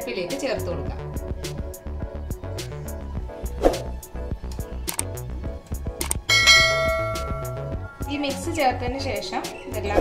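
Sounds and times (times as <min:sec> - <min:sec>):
background music with steady beat: 0:00.0 - 0:10.0
bright bell chime: 0:06.3 - 0:07.8.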